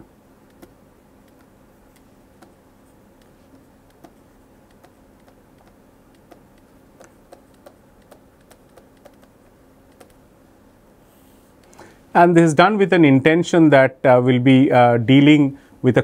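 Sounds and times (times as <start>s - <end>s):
low steady hum: 0.0s - 16.0s
stylus tapping on tablet: 0.5s - 2.6s, 3.2s - 10.2s.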